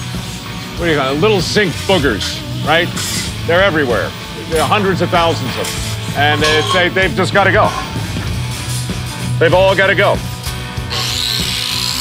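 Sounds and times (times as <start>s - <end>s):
angle grinder running: 10.8s - 12.0s.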